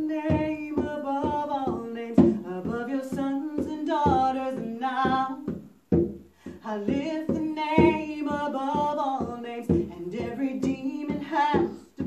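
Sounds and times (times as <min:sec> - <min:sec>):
conga drum beat: 0:00.0 - 0:12.0
woman singing: 0:00.0 - 0:12.0.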